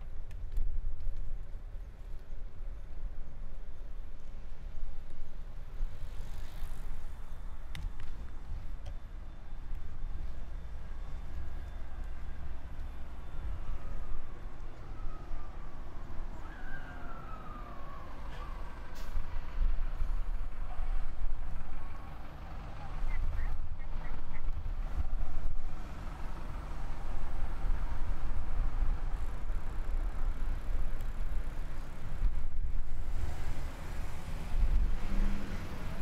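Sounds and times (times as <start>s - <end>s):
vehicle engines rumbling: 0.0s - 36.0s.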